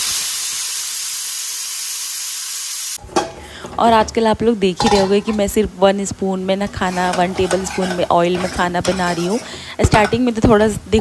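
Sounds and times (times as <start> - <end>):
pressure cooker steam hiss: 0.0 - 3.4.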